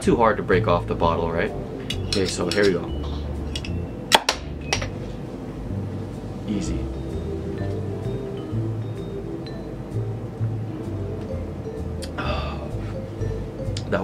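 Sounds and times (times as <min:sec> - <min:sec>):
background music with steady beat: 0:00.0 - 0:14.0.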